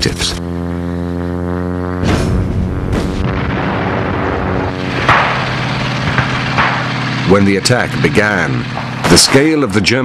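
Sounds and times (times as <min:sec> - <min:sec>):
low hum: 0:00.0 - 0:09.7
steady rumble: 0:00.0 - 0:09.9
sudden loud burst: 0:02.0 - 0:06.9
sharp knocks: 0:04.9 - 0:07.1.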